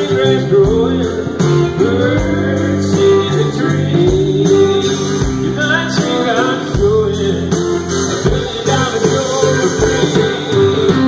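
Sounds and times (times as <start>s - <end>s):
live country band playing: 0.0s - 11.0s
man singing: 0.0s - 11.0s.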